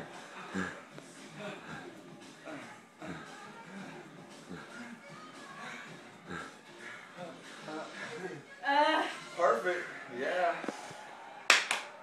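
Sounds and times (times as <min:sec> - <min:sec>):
sharp hand claps: 0:11.5 - 0:12.0.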